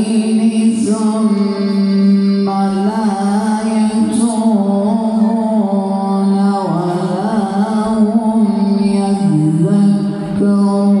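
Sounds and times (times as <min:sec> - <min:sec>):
man reciting melodically over loudspeakers: 0:00.0 - 0:11.0.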